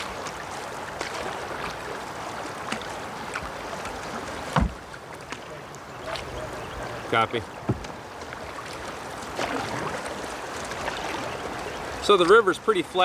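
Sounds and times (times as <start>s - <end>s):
rushing river water: 0.0s - 13.0s
paddle knock: 2.6s - 11.3s.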